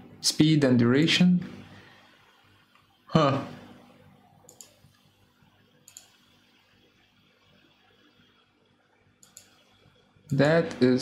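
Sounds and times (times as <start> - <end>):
computer mouse clicks: 4.4 - 5.1, 5.8 - 6.5, 9.2 - 10.4.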